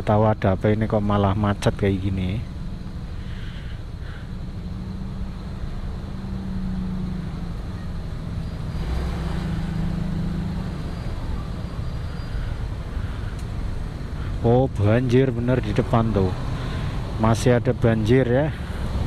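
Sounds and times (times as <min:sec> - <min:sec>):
passing vehicle noise: 0:00.0 - 0:19.0
vehicle engines idling: 0:00.0 - 0:19.0.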